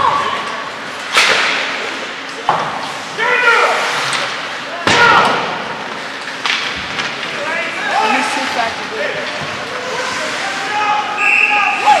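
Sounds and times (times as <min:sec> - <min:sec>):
referee's whistle: 0:11.1 - 0:12.0.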